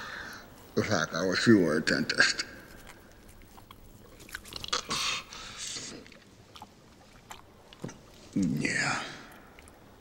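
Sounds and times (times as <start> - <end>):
lip and teeth clicks: 2.7 - 5.0.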